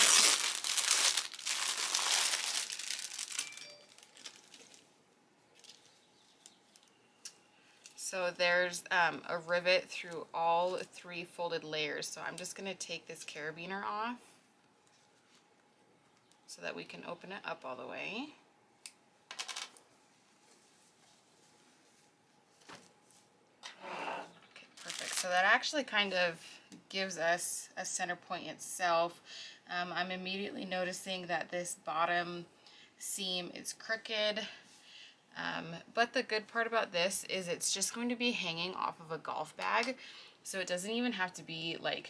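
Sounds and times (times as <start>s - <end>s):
cloth rustling: 0.0s - 4.9s, 19.9s - 23.3s
plastic bag crinkling: 0.0s - 6.9s, 24.7s - 25.5s.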